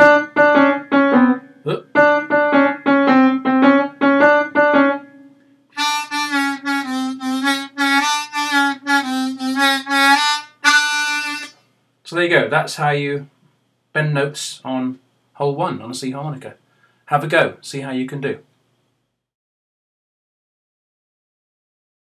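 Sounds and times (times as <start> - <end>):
harmonica low notes: 5.7 - 11.6.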